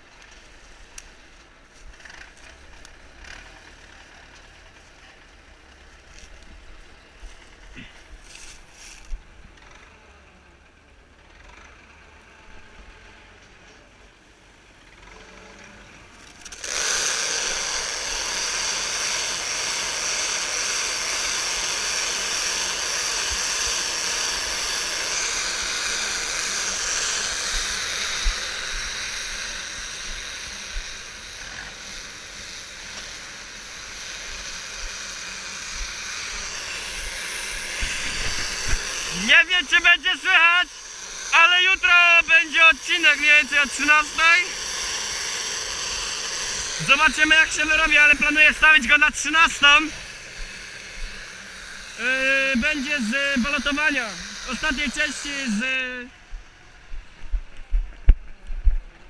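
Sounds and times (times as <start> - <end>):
loud hiss with high tones: 16.5 - 56.4.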